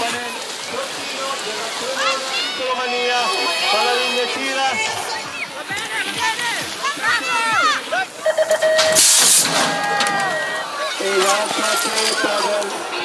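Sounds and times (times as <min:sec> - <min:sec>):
race announcer speaking: 0:00.0 - 0:09.0, 0:09.8 - 0:13.0
spectators shouting: 0:00.0 - 0:13.0
bikes crashing onto track: 0:08.2 - 0:12.9.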